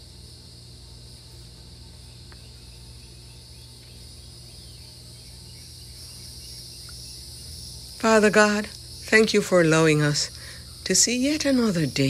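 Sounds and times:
high-pitched insect chorus: 0.0s - 12.0s
low steady hum: 0.0s - 12.0s.

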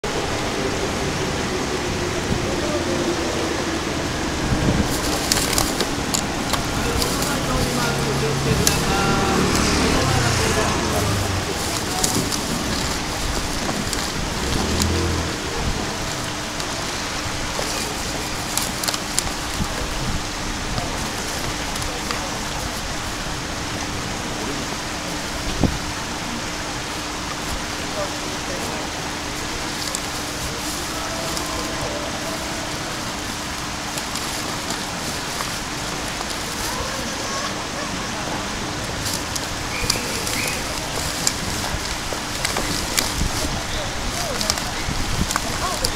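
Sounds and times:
street traffic: 0.0s - 45.9s
voices: 0.0s - 45.9s
water rushing over a step: 0.0s - 45.9s.

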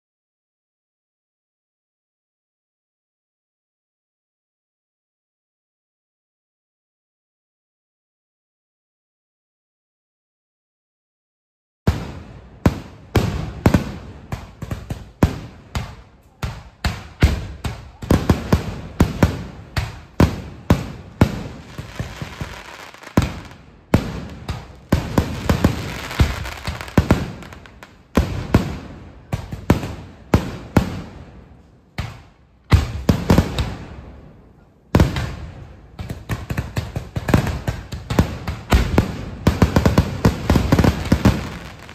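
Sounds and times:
fireworks bangs: 11.9s - 41.9s
firework shells bursting: 21.3s - 28.4s, 40.3s - 41.9s.

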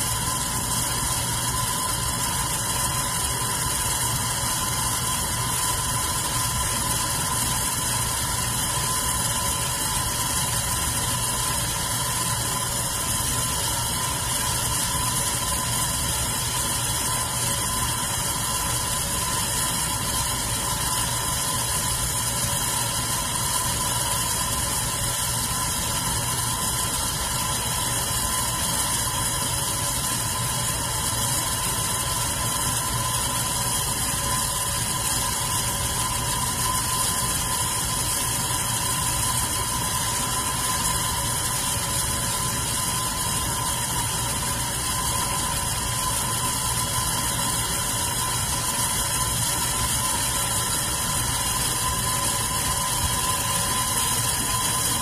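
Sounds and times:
electric fan whirring: 0.0s - 55.0s.

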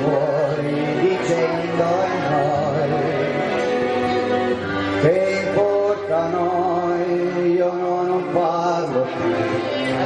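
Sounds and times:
backing track: 0.0s - 10.0s
man singing karaoke: 0.0s - 10.0s.

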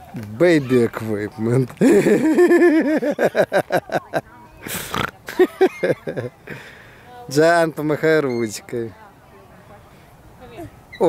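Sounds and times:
child laughing: 1.8s - 6.3s
sharp intake of breath: 6.5s - 7.1s.

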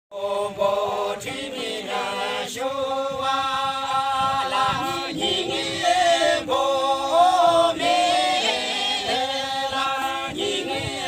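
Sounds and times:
group singing in unison: 0.1s - 11.0s.

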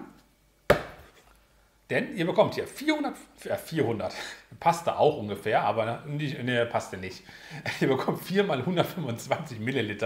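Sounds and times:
sharp knock: 0.7s - 1.0s.

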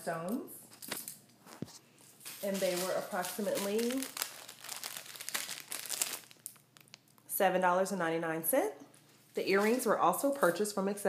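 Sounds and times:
plastic bag crinkling: 2.1s - 7.3s.

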